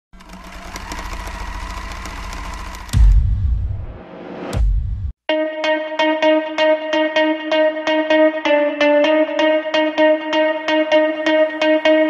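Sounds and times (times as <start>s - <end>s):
sewing machine stitching: 0.1s - 3.2s.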